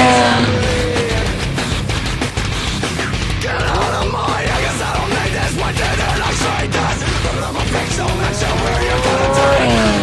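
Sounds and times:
loud rock music: 0.0s - 10.0s
motorcycle revving: 0.0s - 10.0s.

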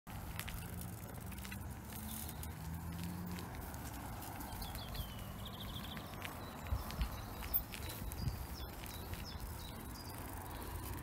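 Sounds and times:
footsteps on pavement: 0.1s - 11.0s
outdoor background noise: 0.1s - 11.0s.

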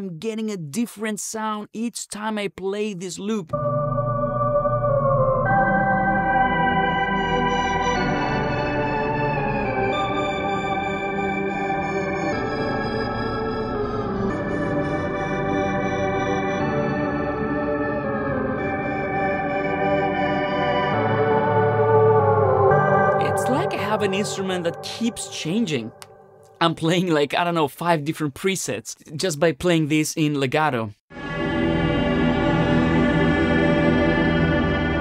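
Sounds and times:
sustained organ-like synth chords: 3.5s - 26.6s.

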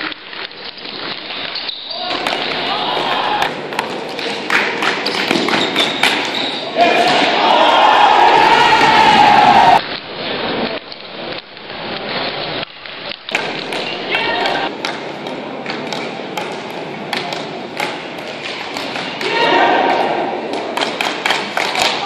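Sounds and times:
crowd voices in a hall: 1.6s - 22.0s
hockey stick knocking ball on floor: 2.1s - 6.4s, 20.5s - 22.0s.

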